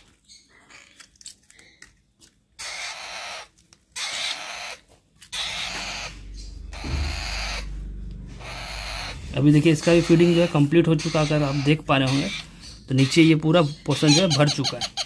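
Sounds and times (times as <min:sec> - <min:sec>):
parrot chick begging calls: 0:02.6 - 0:07.7, 0:08.4 - 0:15.0
low rumble: 0:06.1 - 0:10.8.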